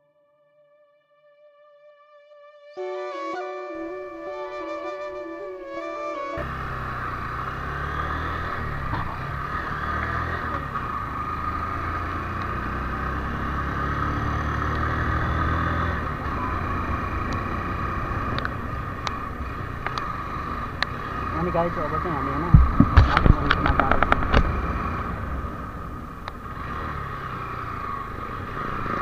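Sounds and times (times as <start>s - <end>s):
motorcycle engine running: 6.4s - 29.0s.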